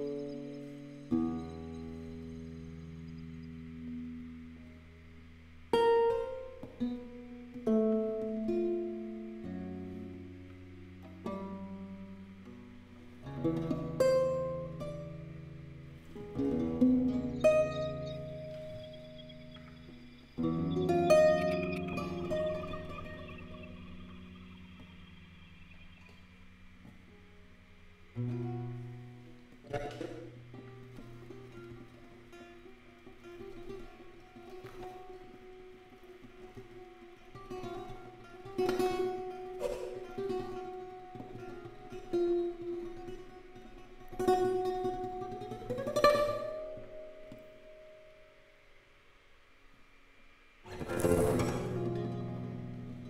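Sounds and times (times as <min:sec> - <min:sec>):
lute plucking notes and chords: 0:00.0 - 0:48.4, 0:50.7 - 0:53.0
electronic drones: 0:16.2 - 0:28.9, 0:50.7 - 0:53.0
rising pitch sweep: 0:18.0 - 0:26.5.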